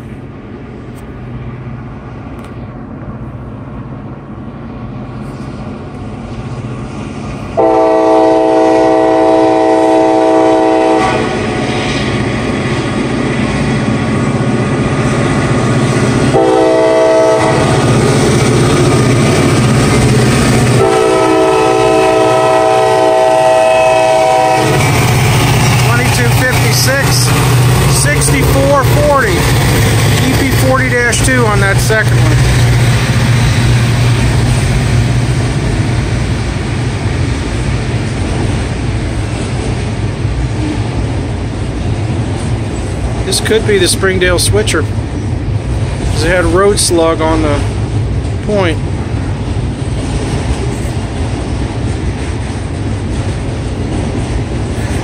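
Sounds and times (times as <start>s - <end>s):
diesel locomotive engine drone: 0.0s - 55.0s
locomotive horn blasts: 7.6s - 11.5s, 16.3s - 17.7s, 20.8s - 25.0s.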